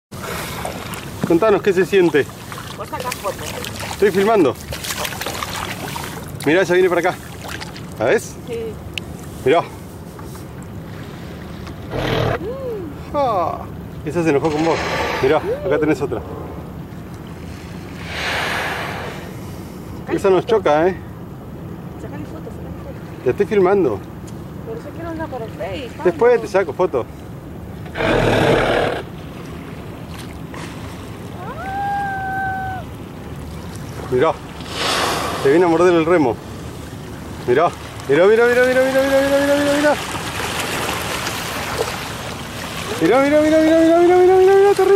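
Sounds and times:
light water lapping: 0:00.1 - 0:44.9
whale rising call: 0:11.9 - 0:13.0, 0:14.7 - 0:16.6, 0:31.3 - 0:33.0
whale blow breath rush: 0:14.5 - 0:15.6, 0:17.5 - 0:20.0, 0:34.6 - 0:35.8.

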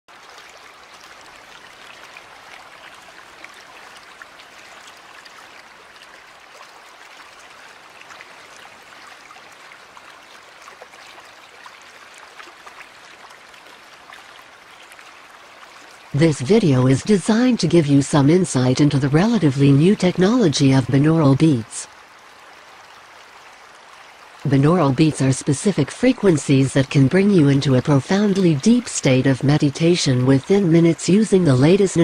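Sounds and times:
water splashes: 0:00.1 - 0:32.0.

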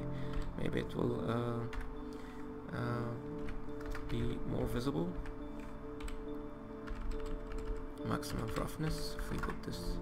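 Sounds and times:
soft background music: 0:00.0 - 0:10.0
computer keyboard typing: 0:00.3 - 0:00.8, 0:01.6 - 0:02.0, 0:03.3 - 0:09.9.

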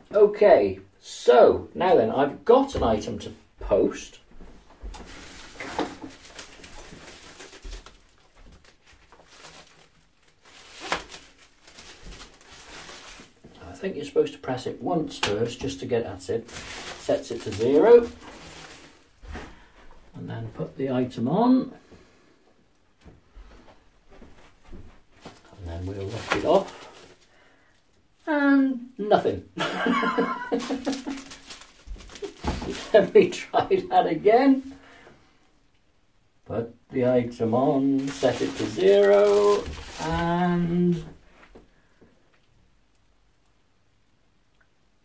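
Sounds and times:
bubble wrap crinkling: 0:04.6 - 0:13.6, 0:16.3 - 0:19.7, 0:24.1 - 0:28.3, 0:29.6 - 0:33.9, 0:37.8 - 0:41.6.

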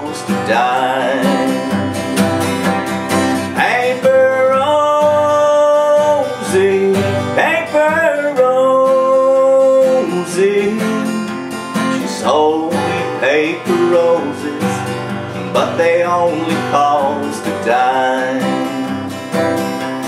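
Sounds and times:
acoustic guitar strumming: 0:00.0 - 0:20.0
man singing: 0:00.0 - 0:20.0.

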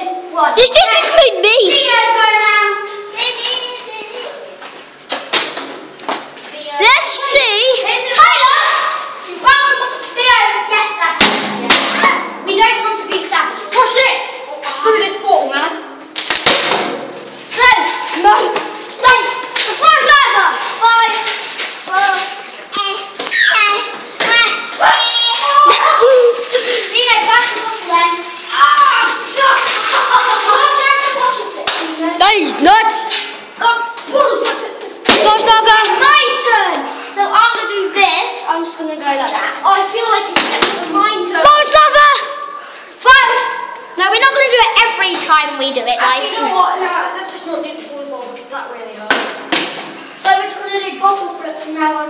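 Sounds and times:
young people shouting: 0:08.0 - 0:10.6, 0:23.3 - 0:26.4, 0:28.5 - 0:31.3
sharp smack: 0:11.2 - 0:12.3, 0:16.2 - 0:17.2, 0:40.4 - 0:40.8
children's vocal sounds: 0:17.4 - 0:44.4
child's high-pitched squeal: 0:23.2 - 0:23.8, 0:24.8 - 0:26.4.

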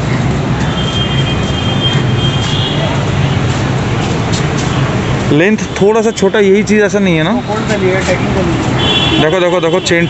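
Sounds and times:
street traffic hum: 0:00.0 - 0:10.0.

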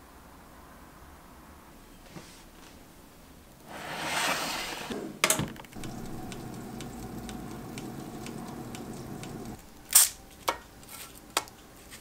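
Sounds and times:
toaster oven humming: 0:05.4 - 0:09.6
timer ticking: 0:05.8 - 0:09.6.

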